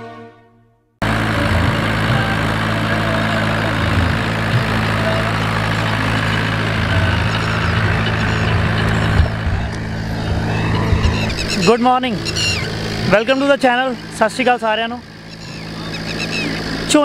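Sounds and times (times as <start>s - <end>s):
tractor diesel engine running: 1.0s - 17.0s.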